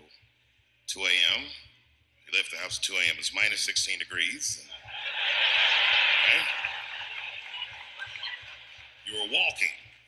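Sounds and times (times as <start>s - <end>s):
audience laughing and applauding: 4.8s - 9.4s.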